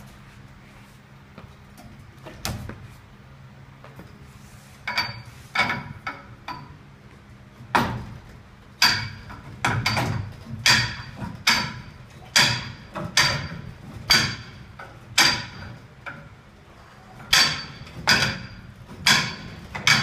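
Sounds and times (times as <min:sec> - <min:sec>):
metal rings clanking on pipe: 0:04.8 - 0:06.8, 0:08.8 - 0:16.3, 0:17.2 - 0:20.0.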